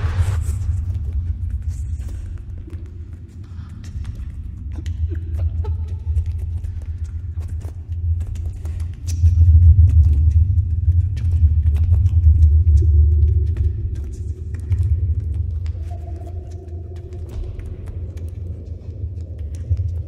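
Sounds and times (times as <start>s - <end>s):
deep rumbling drone: 0.0s - 20.0s.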